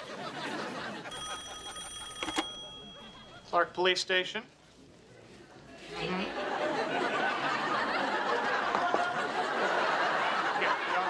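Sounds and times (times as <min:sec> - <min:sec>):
telephone ringing: 0:01.0 - 0:03.7.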